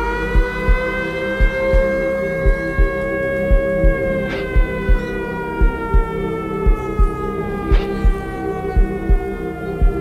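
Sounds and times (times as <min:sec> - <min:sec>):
falling synth tone: 0:00.0 - 0:10.0
steady synth drone: 0:00.0 - 0:10.0
deep bass thumps: 0:00.2 - 0:10.0.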